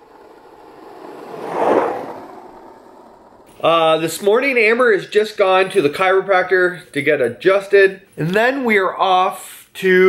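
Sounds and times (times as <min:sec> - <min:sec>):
whoosh: 0:00.0 - 0:04.2.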